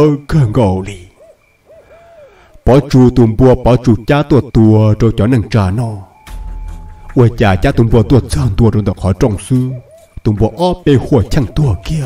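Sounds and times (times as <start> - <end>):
man narrating: 0.0 - 1.2, 2.6 - 6.1, 7.1 - 12.0
faint hooting calls: 0.0 - 12.0.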